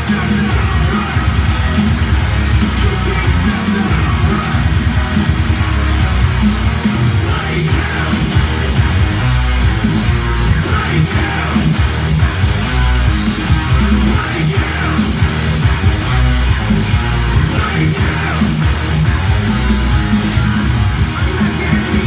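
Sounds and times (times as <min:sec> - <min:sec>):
electric guitar metal riff: 0:00.0 - 0:22.0
recorded backing track: 0:00.0 - 0:22.0.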